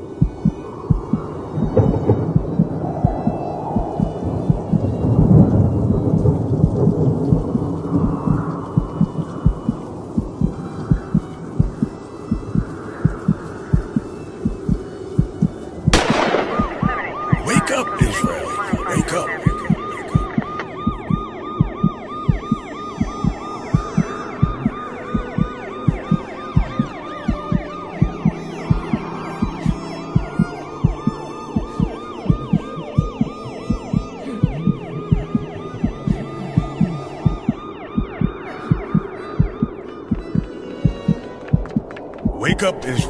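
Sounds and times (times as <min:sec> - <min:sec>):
siren yelping: 0:15.9 - 0:41.2.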